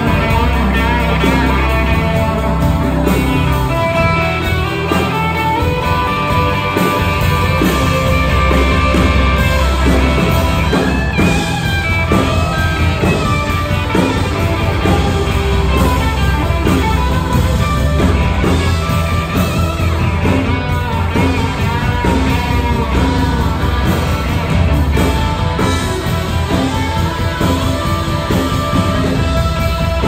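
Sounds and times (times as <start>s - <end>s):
bass-heavy band backing: 0.0s - 30.0s
electric guitar lead lines: 0.0s - 30.0s.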